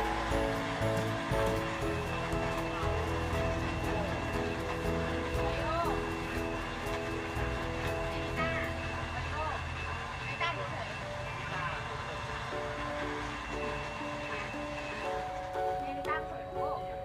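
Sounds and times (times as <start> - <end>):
electric blender running: 0.0 - 15.9.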